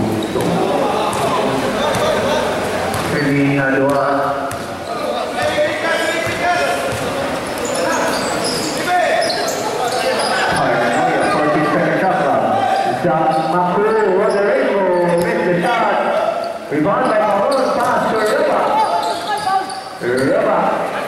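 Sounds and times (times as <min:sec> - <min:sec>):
people shouting and chatting: 0:00.0 - 0:21.0
basketball bouncing on concrete: 0:02.9 - 0:03.2, 0:03.9 - 0:04.8, 0:05.4 - 0:07.2.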